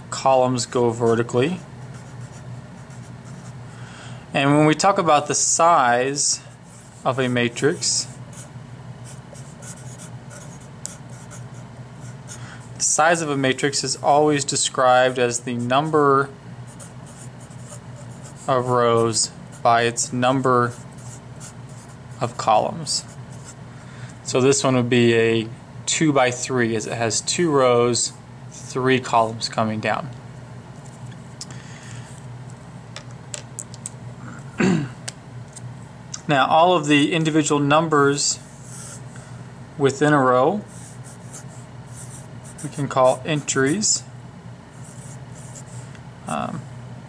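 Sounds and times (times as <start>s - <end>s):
low steady hum: 0.0s - 47.0s
marker writing on paper: 9.1s - 12.4s, 40.7s - 43.6s, 44.8s - 45.8s.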